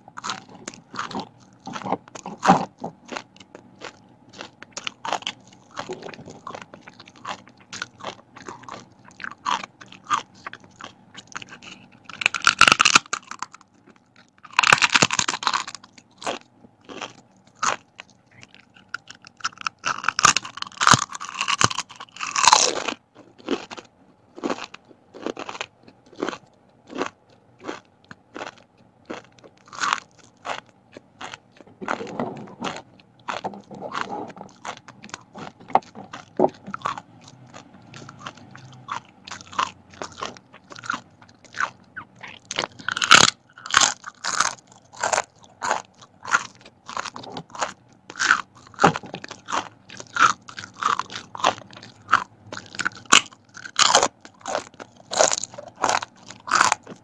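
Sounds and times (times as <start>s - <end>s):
crackers crunching: 0.1s - 57.0s.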